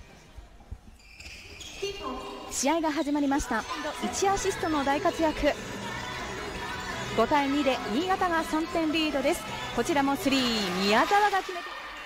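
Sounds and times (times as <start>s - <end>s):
shoe squeaks: 0.9s - 3.9s.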